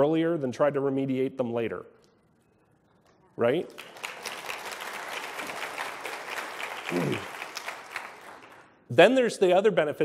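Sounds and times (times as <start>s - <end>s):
audience applauding: 3.7s - 8.7s.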